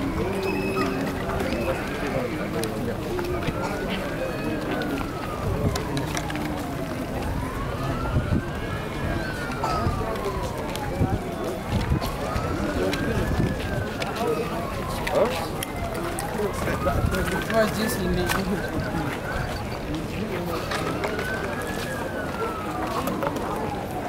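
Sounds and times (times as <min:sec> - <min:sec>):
crowd chatter: 0:00.0 - 0:24.0
crowd footsteps: 0:00.0 - 0:24.0
siren wailing: 0:00.0 - 0:24.0.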